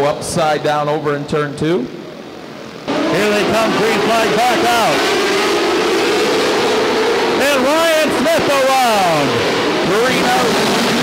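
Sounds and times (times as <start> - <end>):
race car engines droning: 0.0 - 11.0.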